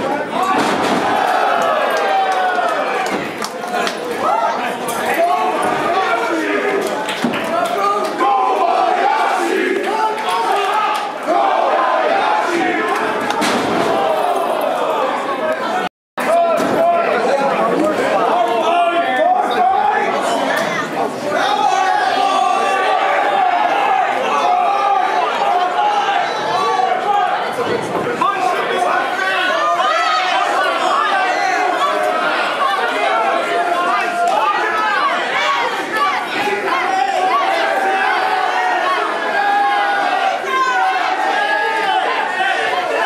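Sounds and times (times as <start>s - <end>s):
crowd shouting and talking: 0.0s - 43.0s.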